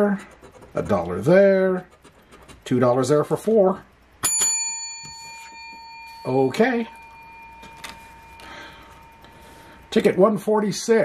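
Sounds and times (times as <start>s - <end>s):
faint high hum: 0.0s - 11.0s
paper handling sounds: 7.6s - 8.2s.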